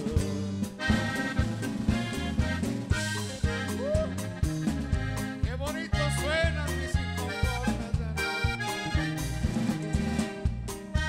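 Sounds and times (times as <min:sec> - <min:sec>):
accordion: 0:00.0 - 0:11.0
band playing with steady beat: 0:00.0 - 0:11.0.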